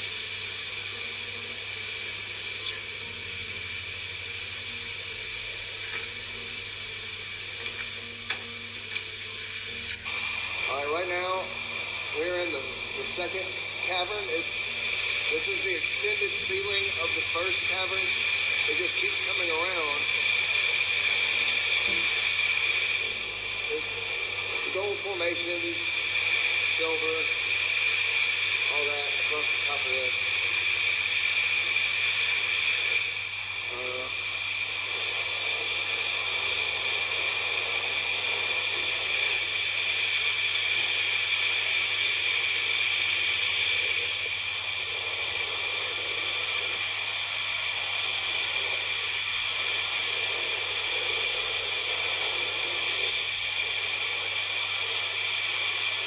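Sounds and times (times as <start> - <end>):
loud steady hiss: 0.0 - 56.0.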